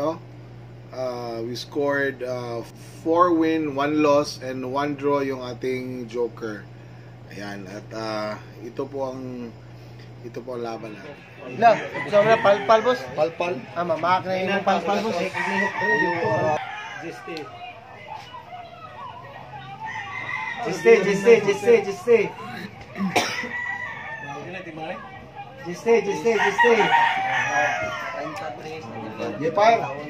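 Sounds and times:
low voices: 0:05.4 - 0:30.0
rooster crowing: 0:10.6 - 0:30.0.

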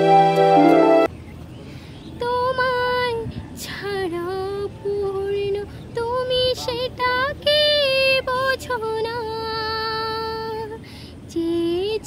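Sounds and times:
woman singing unaccompanied: 0:02.2 - 0:12.0.

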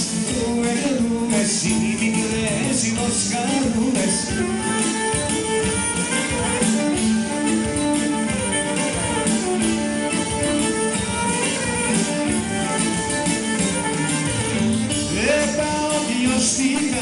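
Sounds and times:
folk dance music: 0:00.0 - 0:17.0
plucked strings: 0:00.0 - 0:17.0
violin melody: 0:04.2 - 0:15.6.

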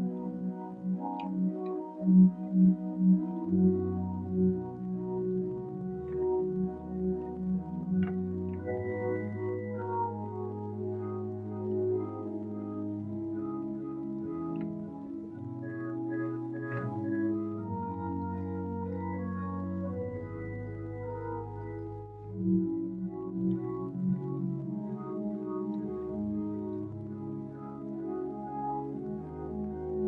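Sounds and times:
church organ playing slow chords: 0:00.0 - 0:30.0.

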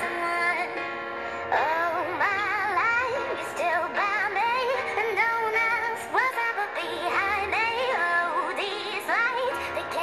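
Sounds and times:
high vocal singing with vibrato: 0:01.5 - 0:10.0.

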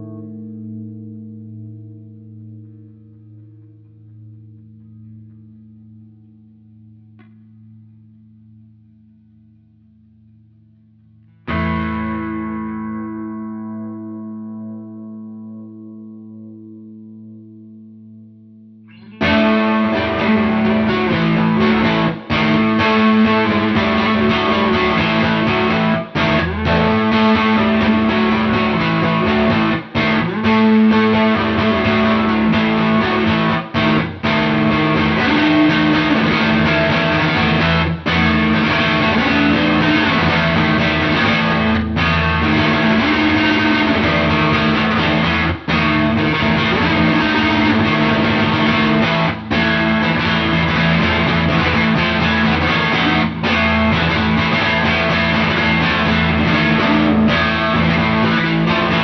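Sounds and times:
distorted electric guitar: 0:00.0 - 0:59.0.

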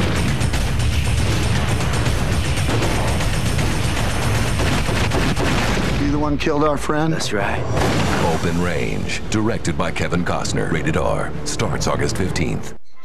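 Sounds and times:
rapid gunshots: 0:00.0 - 0:06.3
film music score: 0:00.0 - 0:13.0.

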